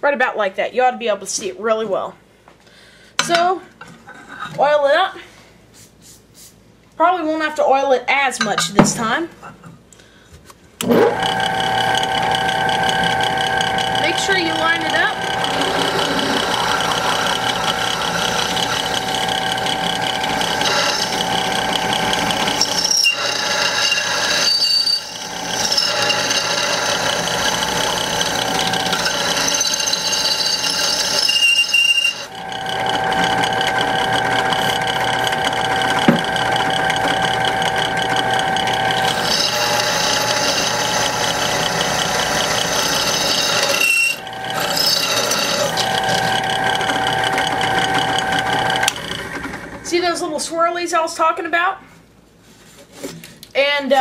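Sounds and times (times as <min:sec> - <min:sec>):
drill bit squeaking: 0:10.8 - 0:49.3
drill press whine: 0:10.8 - 0:49.9.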